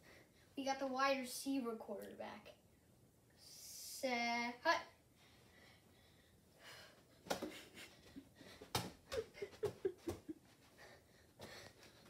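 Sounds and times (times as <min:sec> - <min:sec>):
person laughing: 0:07.4 - 0:08.3, 0:09.0 - 0:10.5.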